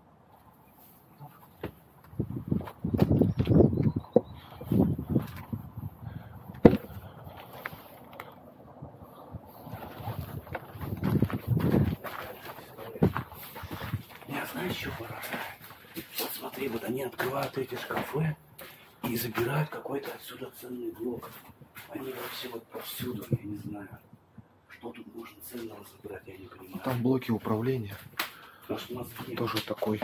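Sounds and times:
quick footsteps: 1.4s - 4.0s, 6.5s - 8.2s, 9.6s - 20.3s.

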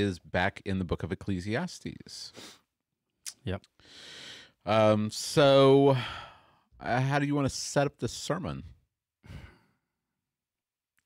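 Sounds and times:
man sighing: 5.9s - 6.6s, 9.2s - 9.8s.

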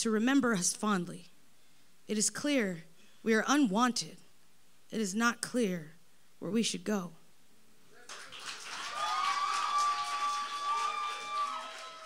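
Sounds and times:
audience applauding: 8.1s - 12.0s
crowd whooping and shouting: 8.6s - 12.0s.

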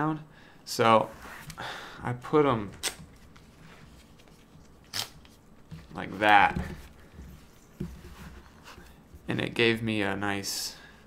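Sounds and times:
headphones being handled: 2.6s - 9.6s.

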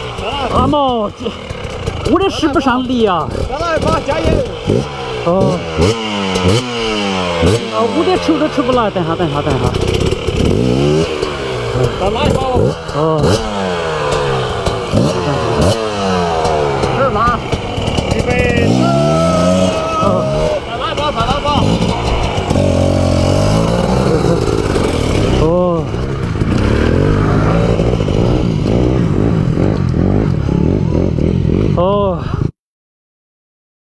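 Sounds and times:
dirt bike engine revving: 0.0s - 32.5s.

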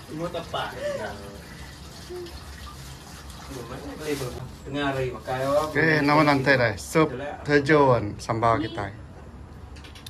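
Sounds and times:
tap water running into metal wok: 0.0s - 3.8s.

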